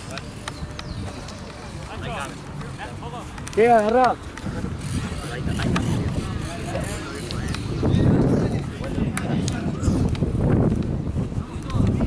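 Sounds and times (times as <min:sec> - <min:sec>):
distant voices: 0:00.0 - 0:12.0
wind rumbling on microphone: 0:00.0 - 0:12.0.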